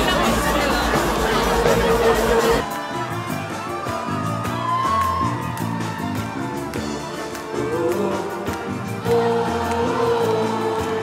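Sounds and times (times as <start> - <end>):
amplified pop music: 0.0 - 11.0.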